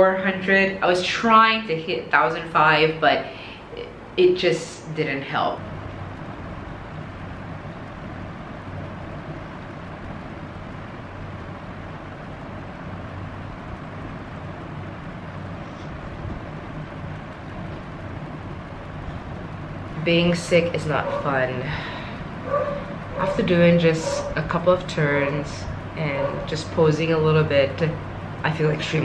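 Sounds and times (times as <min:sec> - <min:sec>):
room noise hiss: 0:00.0 - 0:29.0
steady low hum: 0:00.0 - 0:29.0.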